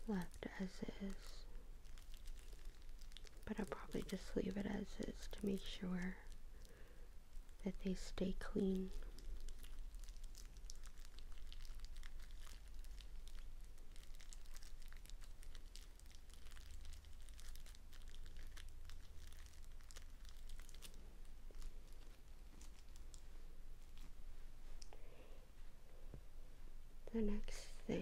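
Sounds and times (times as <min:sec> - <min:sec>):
plastic wrapper crinkling: 0:00.0 - 0:25.0.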